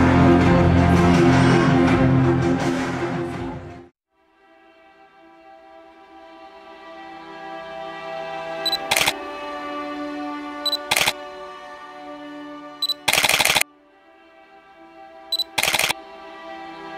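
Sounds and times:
background music with held notes: 0.0s - 16.9s
short high focus beep: 8.7s - 9.1s, 10.7s - 11.1s, 12.8s - 13.6s, 15.4s - 15.9s
camera shutter: 8.7s - 9.2s, 10.7s - 11.2s, 12.8s - 13.6s, 15.4s - 16.0s.

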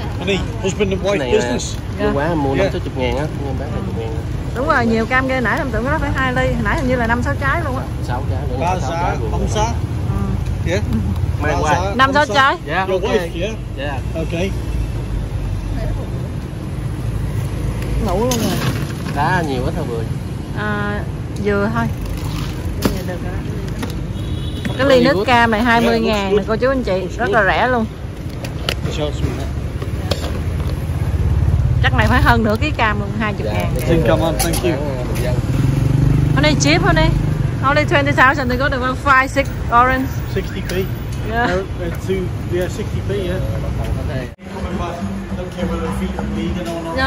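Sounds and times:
city street traffic rumble: 0.0s - 47.0s.

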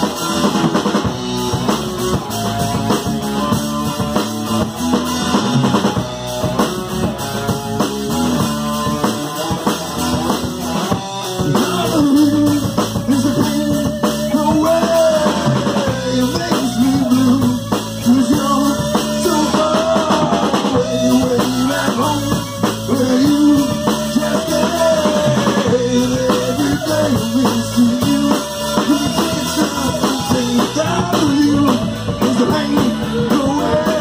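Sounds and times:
drum kit beat: 0.0s - 34.0s
electric guitar: 0.0s - 34.0s.

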